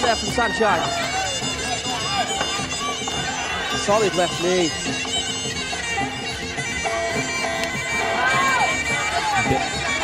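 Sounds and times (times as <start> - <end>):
accompanying instruments: 0.0 - 10.0
reedy oboe melody: 0.0 - 10.0.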